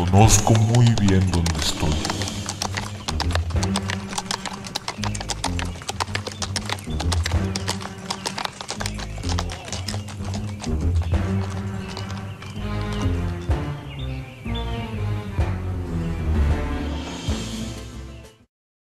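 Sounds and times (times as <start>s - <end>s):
horse hoofbeats clip-clopping: 0.0s - 14.2s.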